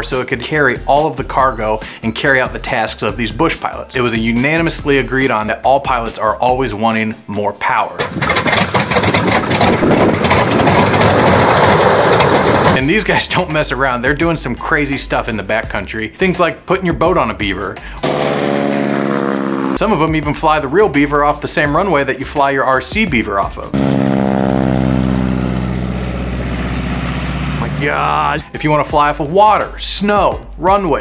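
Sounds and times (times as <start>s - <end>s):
radial aircraft engine running: 8.0s - 12.8s, 18.0s - 19.8s, 23.8s - 28.4s
man speaking: 12.8s - 17.8s, 19.8s - 23.7s, 27.6s - 31.0s.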